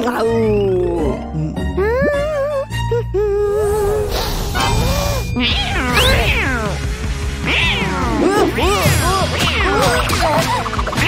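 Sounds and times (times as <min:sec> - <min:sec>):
background music: 0:00.0 - 0:11.0
cartoon kitten meowing: 0:04.6 - 0:06.8.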